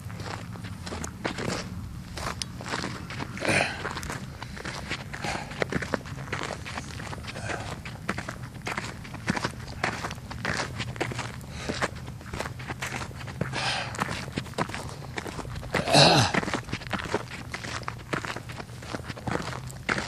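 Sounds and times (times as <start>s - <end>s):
footsteps crunching on ground: 0.0s - 20.0s
low steady rumble: 0.0s - 20.0s.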